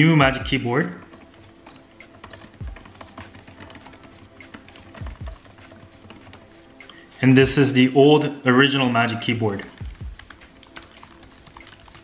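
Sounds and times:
soft background music: 0.0s - 12.0s
laptop keyboard typing: 0.3s - 7.0s, 9.6s - 12.0s.

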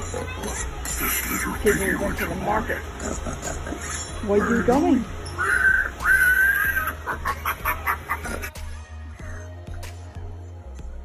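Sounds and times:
background music: 0.0s - 11.0s
pig squeals and grunts from speaker: 4.2s - 7.0s.

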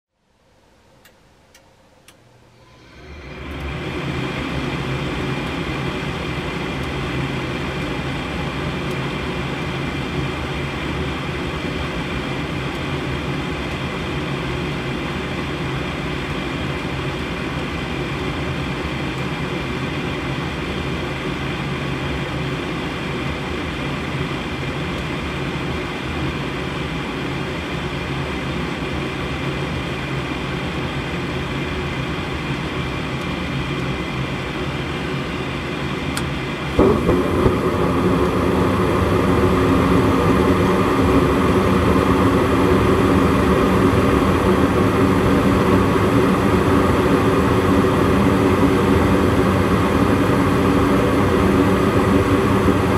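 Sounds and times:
furnace motor humming: 1.5s - 10.3s, 33.0s - 52.9s.

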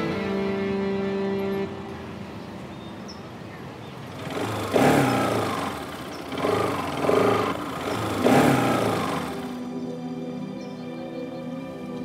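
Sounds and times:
background music: 0.0s - 5.8s, 6.4s - 12.0s
motorcycle engines revving: 3.6s - 9.8s.

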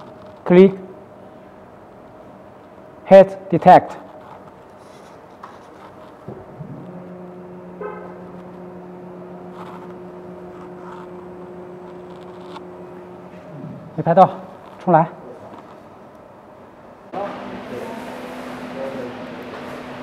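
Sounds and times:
printer carriage motor humming: 6.3s - 14.8s, 17.2s - 20.0s.

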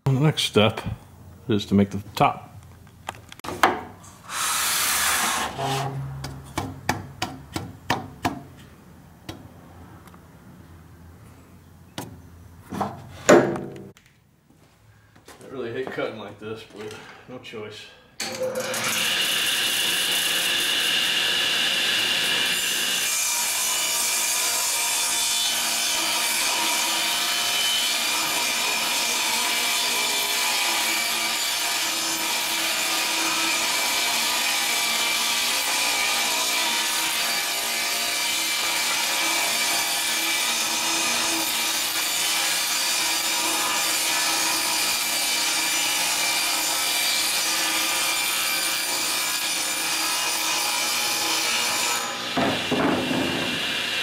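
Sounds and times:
table saw cutting board: 3.5s - 6.5s, 18.2s - 54.0s.

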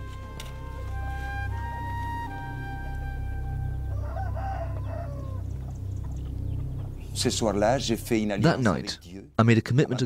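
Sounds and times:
rooster crowing: 3.6s - 5.6s
steady low rumble: 4.7s - 9.3s.

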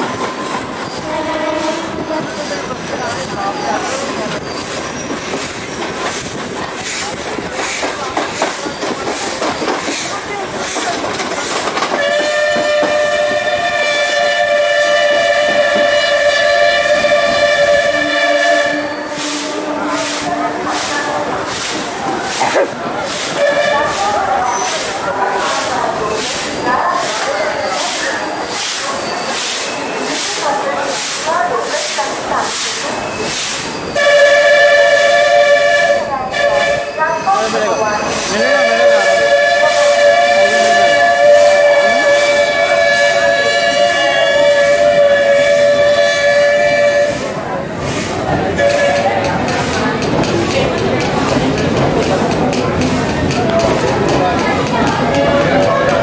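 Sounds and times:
train wheels clattering on rails: 0.0s - 56.0s
train whistle: 0.9s - 2.2s, 11.9s - 21.3s, 23.3s - 24.6s, 34.0s - 37.6s, 38.3s - 47.4s, 48.5s - 49.3s, 55.0s - 56.0s.

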